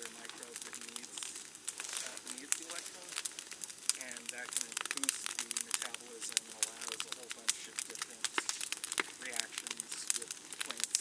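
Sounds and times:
wood fire crackling and popping: 0.0 - 11.0.

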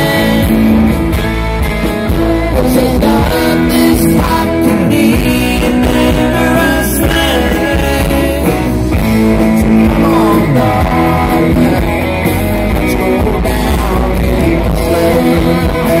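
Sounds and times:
electric guitar: 0.0 - 16.0
live band playing: 0.0 - 16.0.

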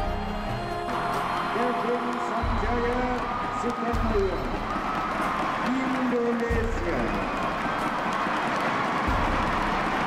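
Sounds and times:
music over loudspeakers: 0.0 - 10.0
arena crowd cheering: 0.1 - 10.0.

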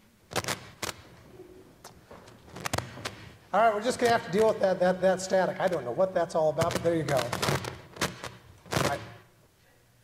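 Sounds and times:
microphone static crackling pops: 0.2 - 9.3.

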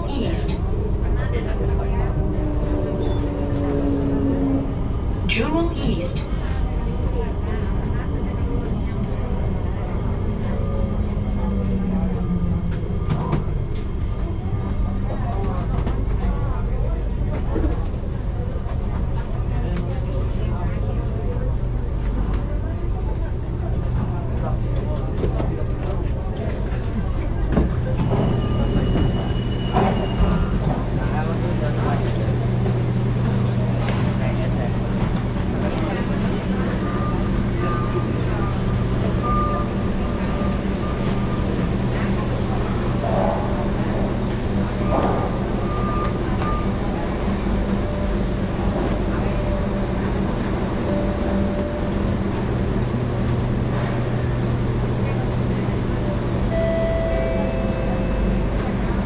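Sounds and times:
people's voices: 0.0 - 59.0
standing train humming: 0.0 - 59.0.

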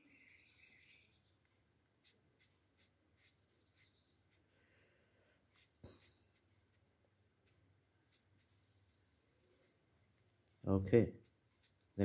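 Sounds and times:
marker scratching on paper: 0.0 - 4.5, 5.4 - 10.3, 11.1 - 12.0.

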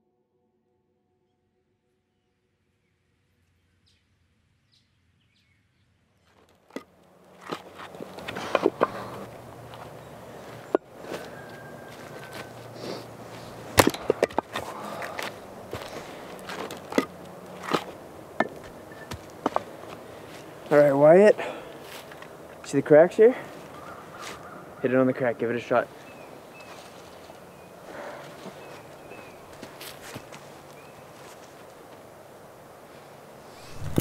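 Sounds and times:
quiet woodland ambience: 1.3 - 34.0
axe splitting logs: 6.7 - 20.0
shuffling in dry leaves: 7.3 - 13.8, 14.5 - 18.0, 23.4 - 24.6, 25.9 - 31.9.

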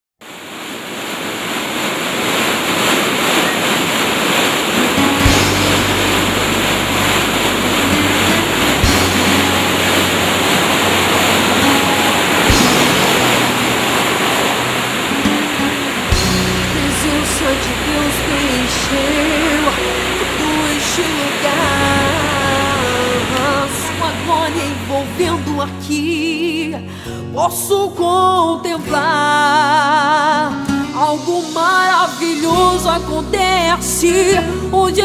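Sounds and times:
rushing waterfall: 0.2 - 26.5, 31.1 - 35.0
soft instrumental music: 4.8 - 35.0.

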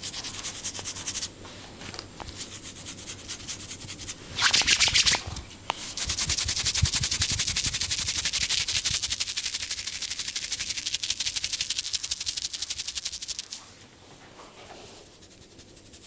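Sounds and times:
fingers rubbing scalp and hair: 2.3 - 13.6, 14.9 - 16.0.

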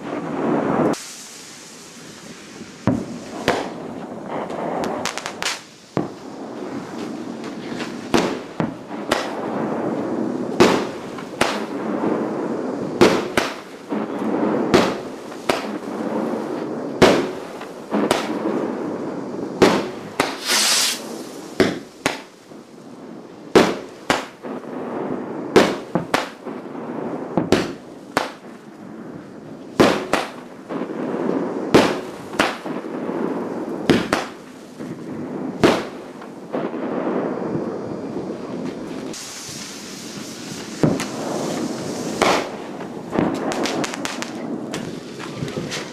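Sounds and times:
distant fireworks rumble and crackle: 0.0 - 45.9
firework bangs: 0.0 - 45.9
firework hiss: 0.0 - 45.9.

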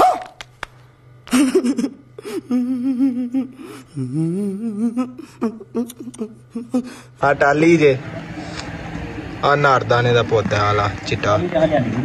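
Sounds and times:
man humming: 2.2 - 7.1.

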